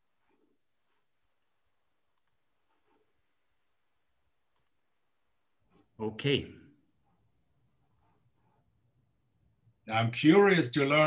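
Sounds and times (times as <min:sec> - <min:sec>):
faint clicks: 0:02.1 - 0:03.0, 0:04.4 - 0:04.9.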